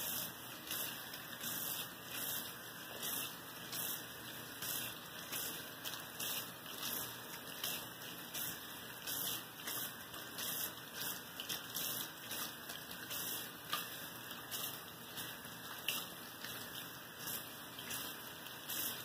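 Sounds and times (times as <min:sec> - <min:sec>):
faucet water running: 0:00.0 - 0:19.0.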